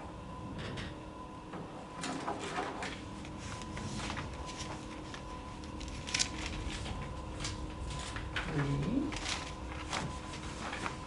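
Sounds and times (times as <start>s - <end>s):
paper sheets rustling: 2.0s - 11.0s.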